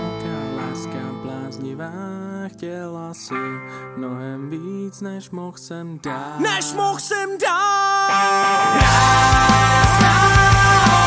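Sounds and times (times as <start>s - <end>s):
punk rock band with guitars: 8.1s - 11.0s.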